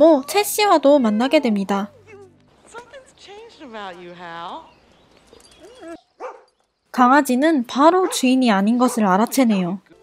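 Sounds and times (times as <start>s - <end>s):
dog whining and barking: 5.3s - 6.5s.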